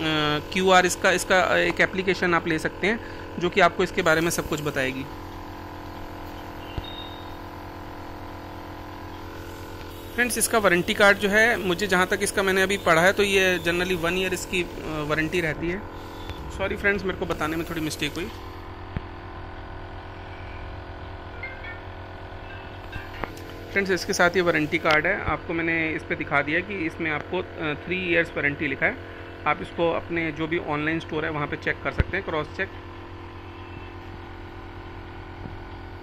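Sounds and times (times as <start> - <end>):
nebulizer compressor hum: 0.0 - 36.0.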